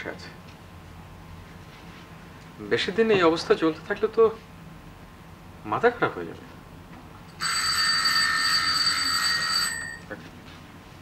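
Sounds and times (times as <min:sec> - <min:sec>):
electric doorbell ringing: 0:07.3 - 0:10.1.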